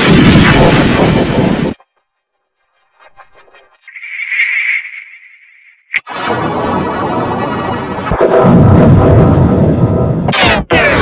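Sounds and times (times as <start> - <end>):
electronically warped logo tone: 1.8 - 9.4.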